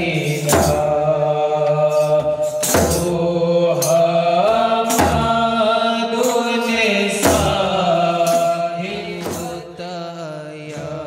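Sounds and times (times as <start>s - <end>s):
men chanting: 0.0s - 11.0s
large drum stroke: 1.9s - 3.2s.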